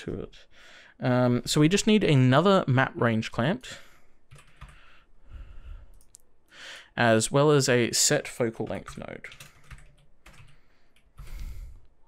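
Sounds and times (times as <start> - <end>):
person breathing: 0.4 - 1.0, 3.7 - 7.0, 9.4 - 12.0.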